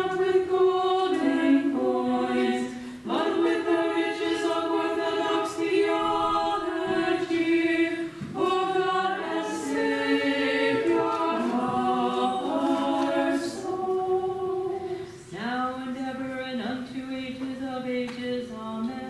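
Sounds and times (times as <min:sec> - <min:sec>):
choir chanting a hymn: 0:00.0 - 0:16.4.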